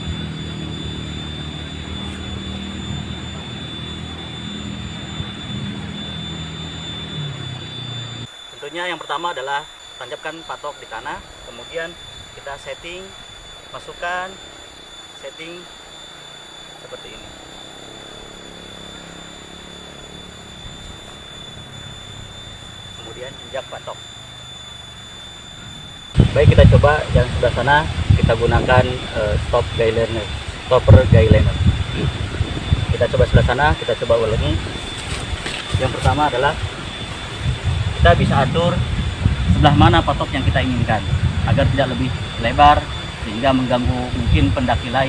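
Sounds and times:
low engine drone: 0.0 - 45.0
thin high whine: 0.0 - 45.0.

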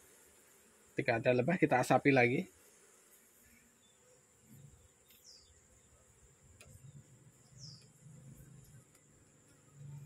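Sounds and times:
bees buzzing: 0.0 - 10.0
high insect whine: 0.0 - 10.0
falling bird chirps: 3.7 - 6.0, 6.6 - 8.7.

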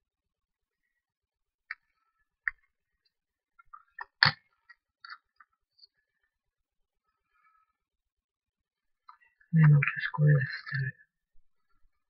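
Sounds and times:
craft tools clicking and tapping: 3.6 - 5.6.

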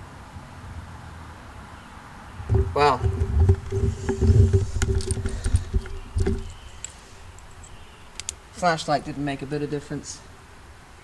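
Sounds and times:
camera handling rumble: 2.4 - 8.4.

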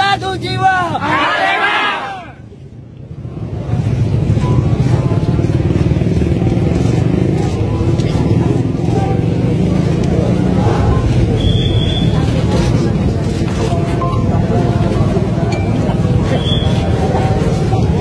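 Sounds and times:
faint crowd voices: 1.0 - 18.0
loud low rumble: 3.2 - 18.0.

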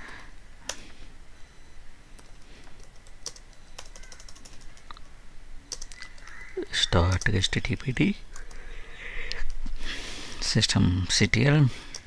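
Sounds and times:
man speaking: 6.6 - 8.2, 10.4 - 11.9.

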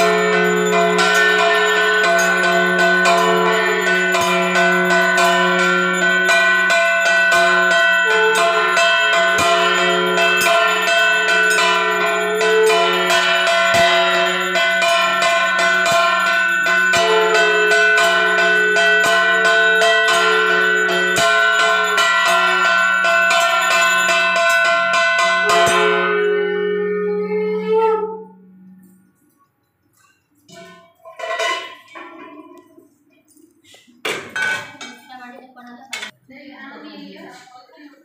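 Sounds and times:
hand bell ringing rapidly: 0.0 - 26.7
steady low tone: 25.4 - 29.3.

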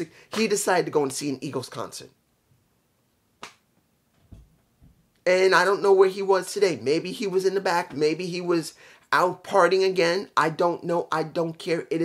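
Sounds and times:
person speaking: 0.0 - 2.2, 5.2 - 12.0.

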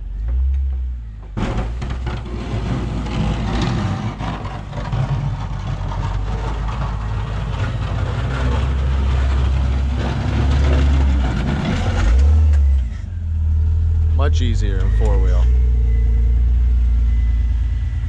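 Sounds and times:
engine working under load: 0.0 - 18.0.

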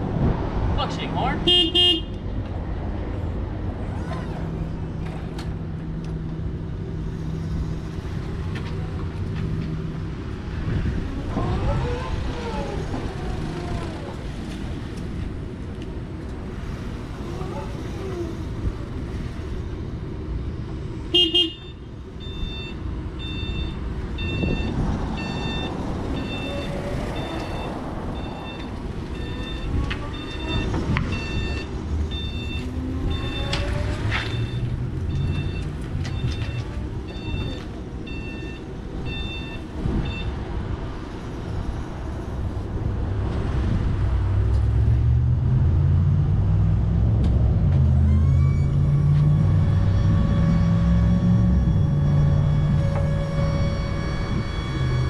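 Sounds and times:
forklift horn toot: 1.4 - 2.2, 21.1 - 21.8, 29.2 - 30.8, 49.7 - 55.0
repeating warning beeper: 22.2 - 33.6, 34.3 - 40.4.

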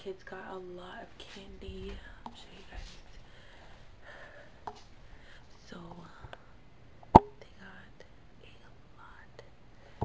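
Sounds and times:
faint rustling: 0.9 - 6.3
person whispering: 7.4 - 9.5.

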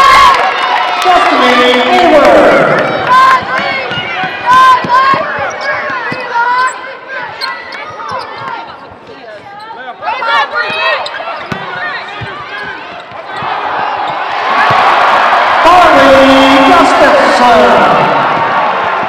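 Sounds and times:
players calling out: 1.0 - 19.0
basketball bouncing on hardwood: 3.2 - 6.6, 10.6 - 14.9.

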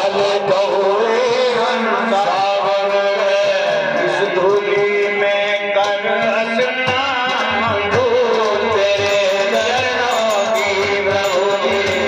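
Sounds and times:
man singing into a microphone: 0.0 - 12.0
musical accompaniment: 0.0 - 12.0.

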